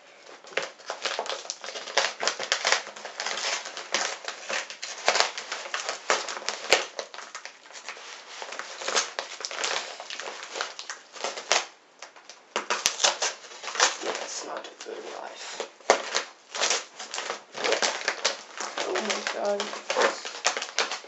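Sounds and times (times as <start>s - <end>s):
plastic bag crinkling: 0.0s - 21.0s.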